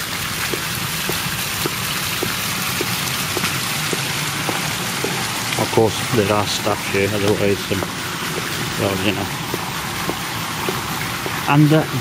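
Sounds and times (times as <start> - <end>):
water jets splashing into pool: 0.0 - 12.0.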